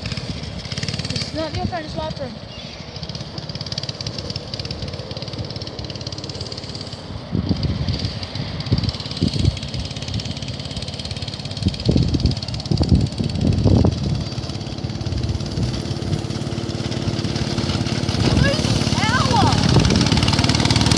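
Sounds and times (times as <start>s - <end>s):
go-kart engine running: 0.0s - 20.9s
low engine bursts: 0.0s - 20.9s.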